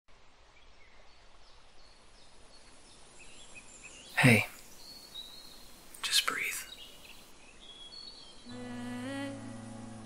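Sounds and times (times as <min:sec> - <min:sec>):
faint outdoor background hiss: 0:00.1 - 0:10.0
faint bird chirps: 0:00.4 - 0:08.6.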